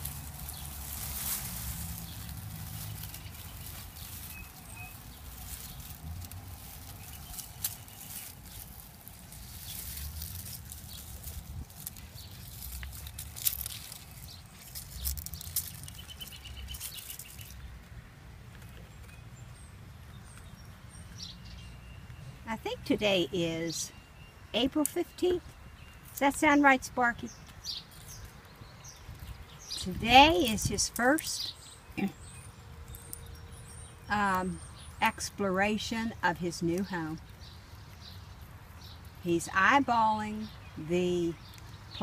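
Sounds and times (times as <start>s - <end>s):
dry leaves rustling and crackling: 0.0s - 21.9s, 27.3s - 34.3s.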